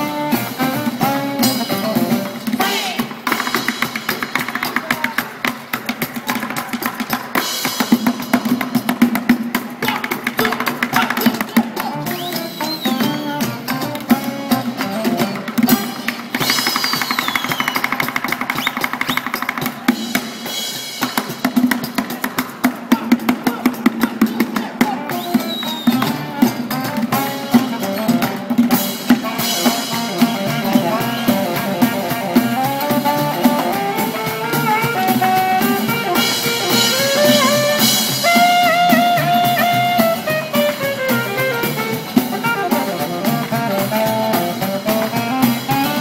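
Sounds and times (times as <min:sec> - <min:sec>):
bucket drum: 0:00.0 - 0:46.0
cajon strikes: 0:01.7 - 0:20.4
fast drum hits: 0:15.4 - 0:26.3.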